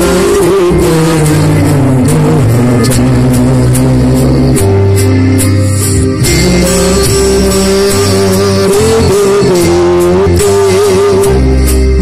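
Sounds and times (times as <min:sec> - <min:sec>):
live music through a pa: 0:00.0 - 0:12.0.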